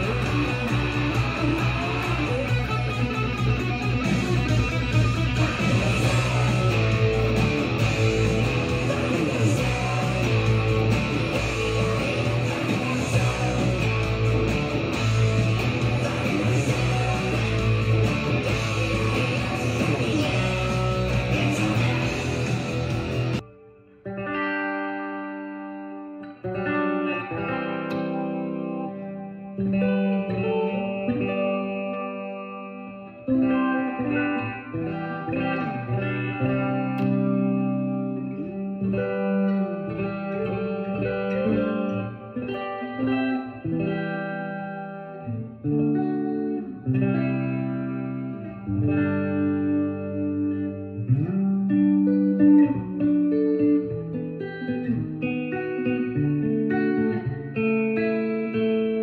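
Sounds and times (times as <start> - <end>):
electric guitar notes and chords: 0.0 - 59.0.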